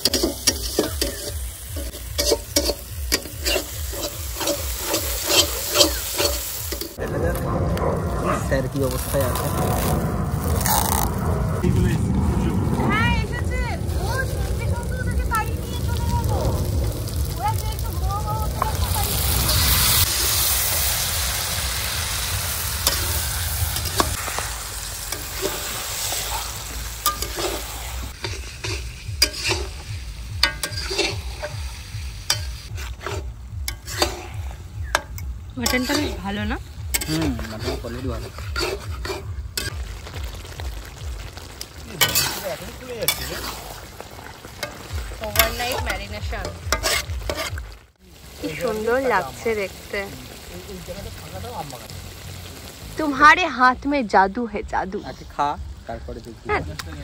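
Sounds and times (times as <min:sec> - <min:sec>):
food sizzling in pan: 0:00.0 - 0:07.0, 0:08.4 - 0:11.2, 0:12.9 - 0:57.0
metal spatula scraping pan: 0:00.0 - 0:07.0, 0:27.0 - 0:31.7, 0:32.3 - 0:39.7, 0:42.0 - 0:43.8, 0:44.6 - 0:47.6.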